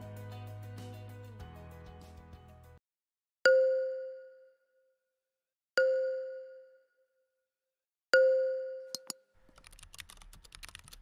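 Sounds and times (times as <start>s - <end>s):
bell-like ding: 5.8s - 6.8s
keyboard typing clicks: 8.9s - 11.0s.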